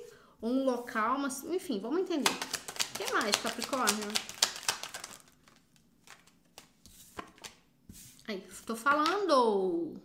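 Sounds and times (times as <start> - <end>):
cards being shuffled: 2.2 - 8.2.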